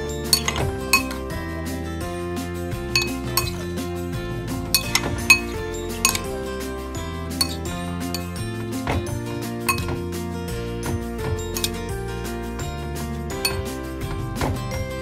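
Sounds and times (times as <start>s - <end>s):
background music: 0.0s - 15.0s
metal spoon clinking bowl: 0.3s - 1.2s, 3.0s - 3.6s, 4.8s - 6.3s, 7.4s - 8.4s, 9.7s - 9.9s, 11.5s - 11.8s.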